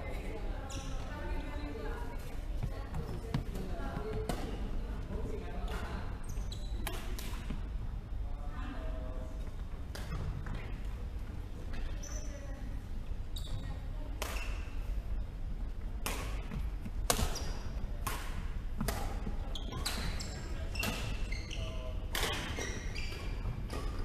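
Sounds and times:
racket striking shuttlecock: 0:16.0 - 0:16.5.

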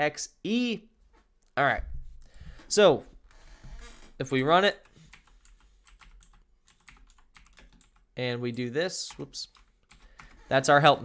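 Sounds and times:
faint keyboard typing: 0:04.7 - 0:10.7.

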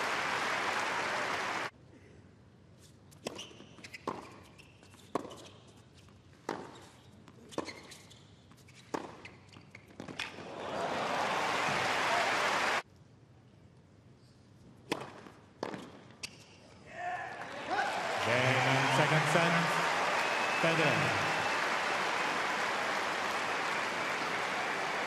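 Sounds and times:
crowd applause and cheering: 0:00.0 - 0:01.7, 0:10.4 - 0:12.8, 0:17.3 - 0:25.0.

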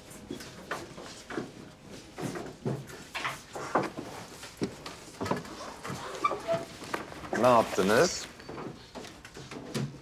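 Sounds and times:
rustling and shuffling: 0:00.0 - 0:10.0.

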